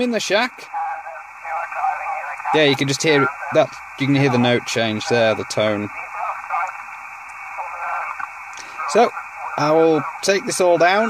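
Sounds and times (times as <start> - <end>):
faint wandering radio tone: 0.0 - 11.0
radio receiver hiss: 0.0 - 11.0.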